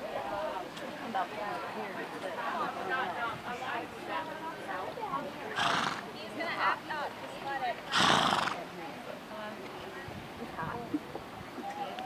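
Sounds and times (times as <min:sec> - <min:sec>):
people talking: 0:00.0 - 0:12.0
horse blasts: 0:07.9 - 0:08.6.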